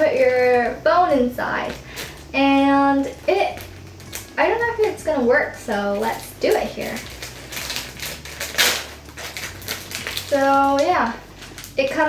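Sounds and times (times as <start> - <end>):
plastic packaging crinkling: 0.0 - 12.0.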